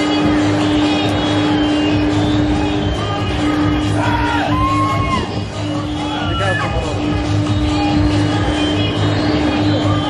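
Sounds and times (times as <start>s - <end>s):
pendulum ride mechanical hum: 0.0s - 10.0s.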